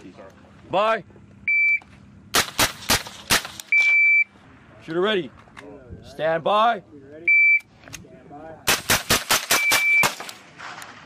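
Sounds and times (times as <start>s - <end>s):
rifle shots: 2.3s - 4.0s, 8.7s - 11.0s
high electronic beep: 3.7s - 4.3s, 9.6s - 10.1s.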